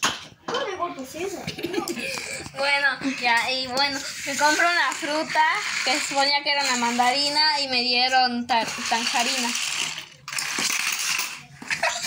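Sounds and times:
plastic toys clattering on tile: 1.4 - 12.0.

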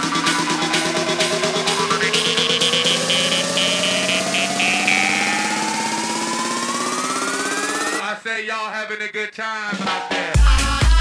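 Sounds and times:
jaw harp buzzing drone: 0.0 - 8.0
jaw harp rising tone: 0.0 - 8.0.

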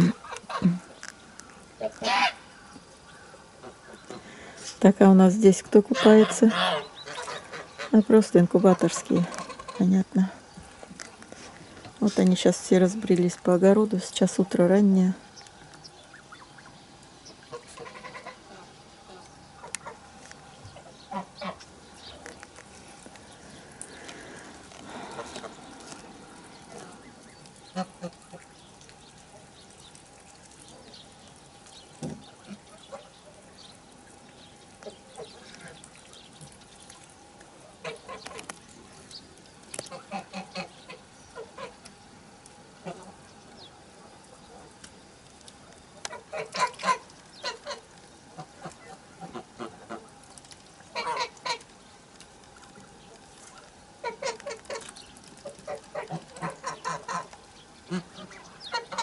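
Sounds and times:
geese honking: 1.8 - 2.6, 5.8 - 9.9, 16.0 - 21.8, 24.0 - 28.6, 46.0 - 50.2, 50.8 - 51.7, 53.4 - 59.0.

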